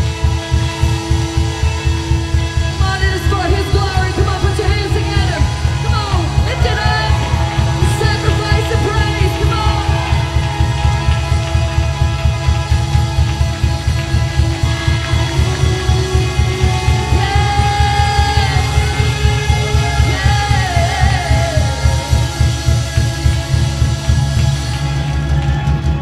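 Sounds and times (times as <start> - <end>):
person singing: 0.0 - 24.0
worship band playing: 0.0 - 26.0.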